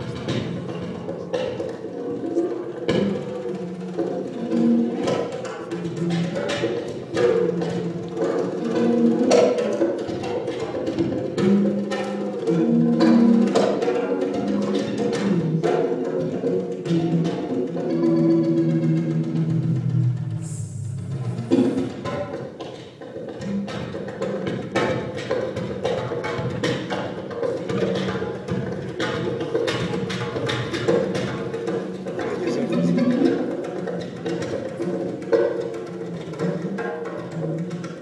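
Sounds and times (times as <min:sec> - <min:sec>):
oud: 0:00.0 - 0:38.0
percussion and drum hits: 0:00.0 - 0:38.0.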